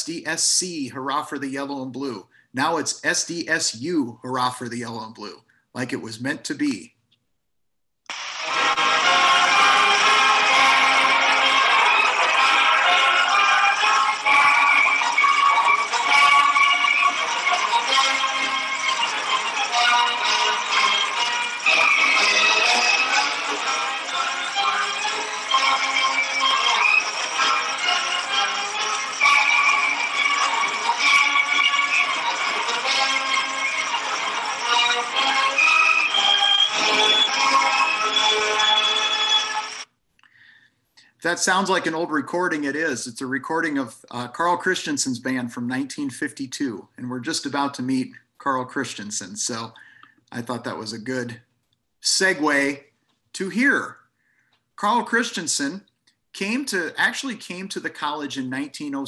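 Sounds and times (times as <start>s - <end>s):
band playing: 8.1s - 39.8s.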